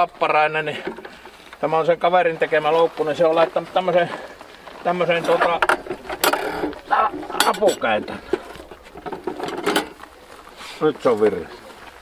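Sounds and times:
metallic trap clicks and rattle: 5.4s - 8.0s.

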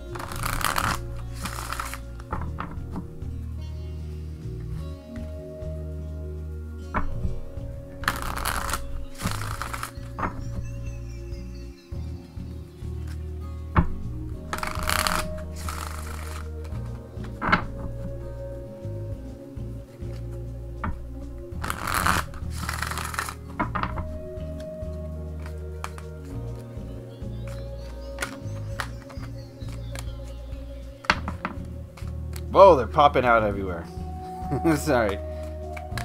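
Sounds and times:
cards riffle-shuffled: 0.0s - 3.1s, 8.0s - 10.7s, 13.9s - 18.2s, 20.0s - 26.4s, 27.5s - 30.4s
background music: 0.0s - 36.0s
card clicks: 0.1s - 2.7s, 8.1s - 10.4s, 14.5s - 17.9s, 25.4s - 26.3s, 27.5s - 30.2s.

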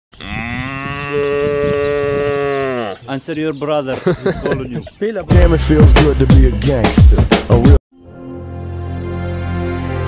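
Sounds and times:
cow mooing: 0.2s - 3.1s.

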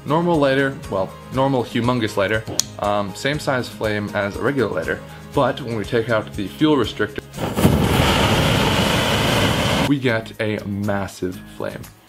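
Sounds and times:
lighter flame rushing: 7.2s - 9.9s.

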